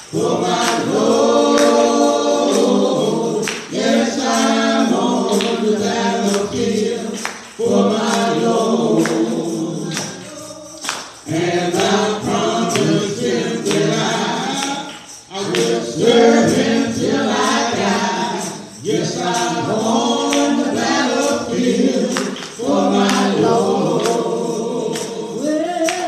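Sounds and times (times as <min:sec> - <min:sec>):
sharp percussive hits: 0:00.0 - 0:26.0
voices singing along: 0:00.0 - 0:26.0
man singing gospel hymn: 0:00.1 - 0:26.0.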